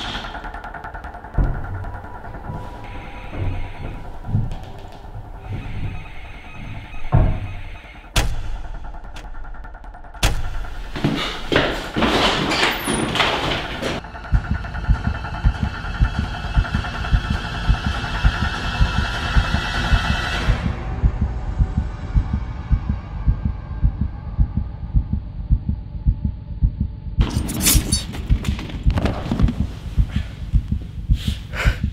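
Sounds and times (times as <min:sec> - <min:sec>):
dark music drone: 0:00.0 - 0:31.0
heartbeat thumping: 0:13.8 - 0:27.2, 0:28.1 - 0:31.9.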